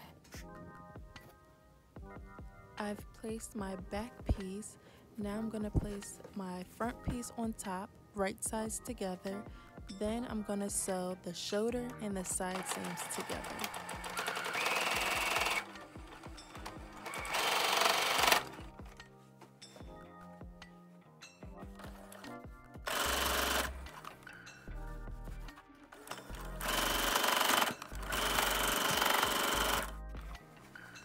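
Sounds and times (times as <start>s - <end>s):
electric sewing machine stitching: 12.4s - 18.8s, 22.9s - 24.1s, 26.0s - 30.0s.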